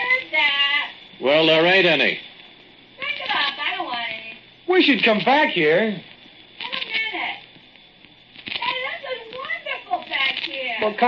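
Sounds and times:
dialogue voices: 0.0 - 11.0.

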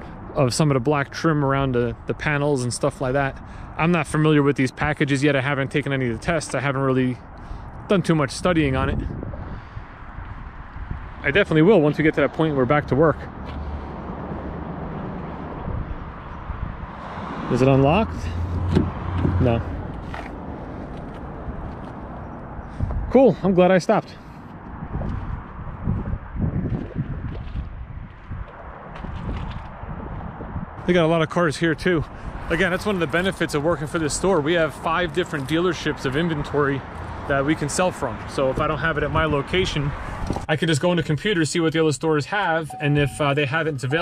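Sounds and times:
wind buffeting microphone: 6.1 - 23.3, 24.5 - 40.5
footsteps on asphalt: 13.2 - 15.5, 18.5 - 23.1, 24.2 - 30.3
person speaking: 19.2 - 19.8, 42.3 - 44.0.

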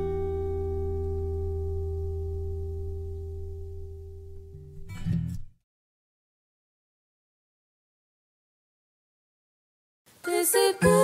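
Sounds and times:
acoustic guitar chord ringing: 0.0 - 5.5.

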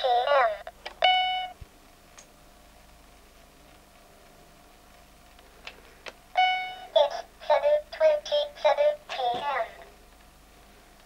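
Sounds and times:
electronic beep: 6.4 - 6.9.

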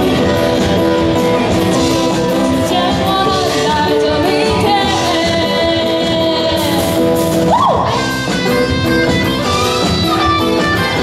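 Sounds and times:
live band playing pop-rock: 0.0 - 11.0.

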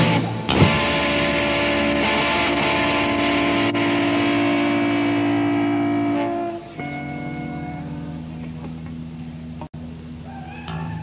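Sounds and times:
distorted electric guitar chord: 0.0 - 9.7.

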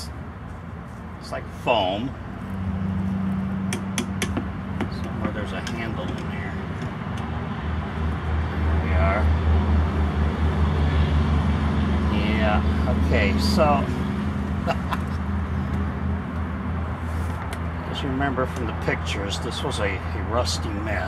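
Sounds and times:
engine running: 0.0 - 21.0.

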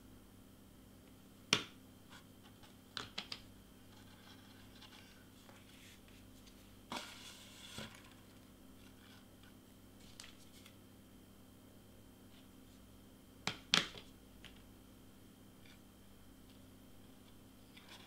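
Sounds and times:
faint steady hum: 0.0 - 18.0
paper rustle: 10.0 - 10.8.

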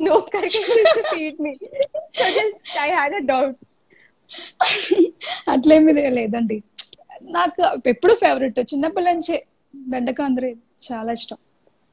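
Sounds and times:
woman laughing: 0.1 - 2.9, 4.6 - 5.5.

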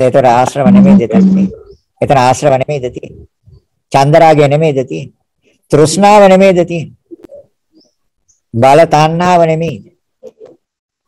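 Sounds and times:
man holding a drawn-out syllable: 0.6 - 1.7.

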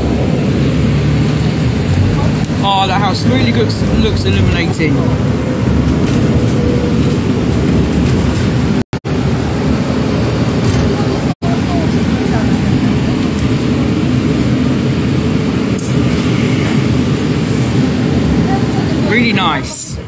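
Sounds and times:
bus engine rumble: 0.0 - 20.0
road noise: 0.0 - 20.0.

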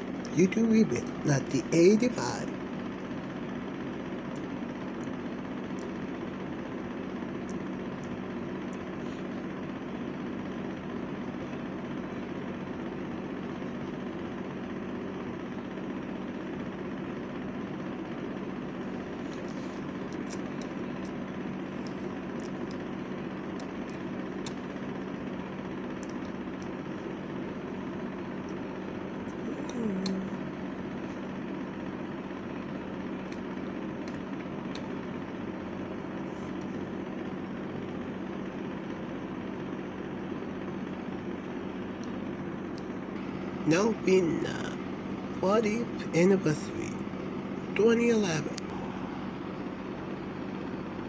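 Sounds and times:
steady hum and hiss: 0.0 - 51.0.

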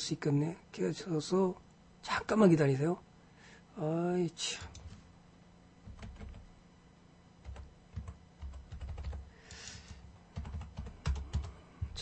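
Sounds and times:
computer keyboard typing: 4.6 - 5.0, 5.8 - 6.5, 7.4 - 12.0.

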